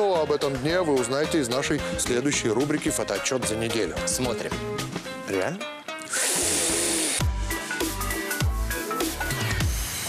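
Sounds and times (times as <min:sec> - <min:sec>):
electronic music with deep bass: 0:06.4 - 0:10.0.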